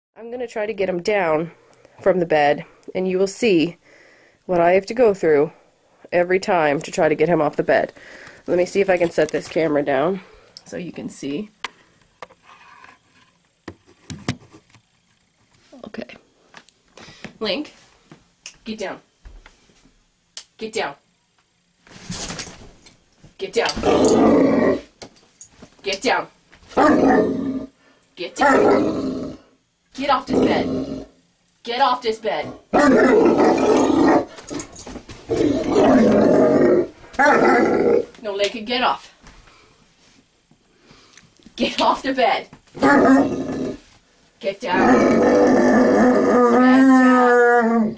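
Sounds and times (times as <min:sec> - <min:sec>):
large dog growling: 0:23.8 - 0:24.9, 0:26.8 - 0:27.7, 0:28.4 - 0:29.5, 0:30.2 - 0:31.1, 0:32.4 - 0:38.1, 0:42.8 - 0:43.9, 0:44.7 - 0:47.9.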